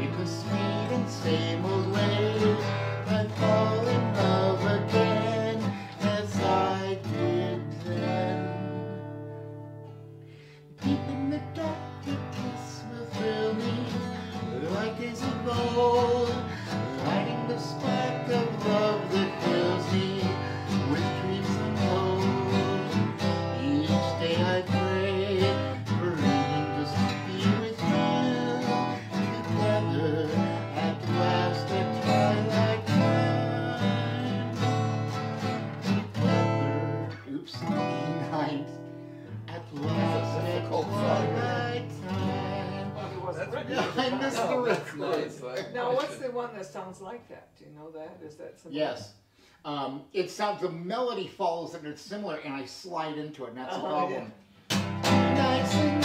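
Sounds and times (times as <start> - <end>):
acoustic guitar playing: 0.0 - 46.8, 53.7 - 56.0.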